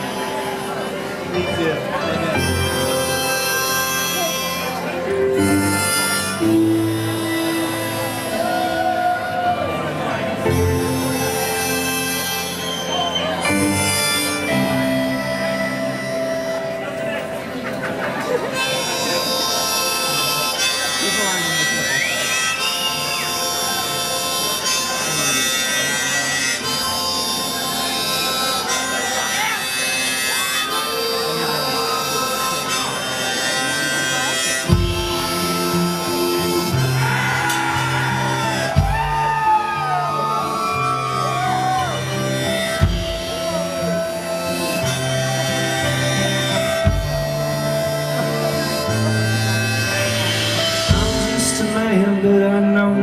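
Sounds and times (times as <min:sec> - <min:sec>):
harmonica long notes: 0:00.0 - 0:53.0
strummed acoustic guitar: 0:42.0 - 0:53.0.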